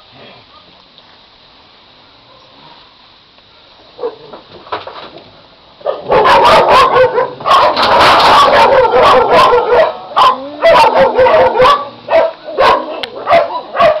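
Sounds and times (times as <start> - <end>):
dogs barking: 4.0 - 4.3, 5.8 - 14.0.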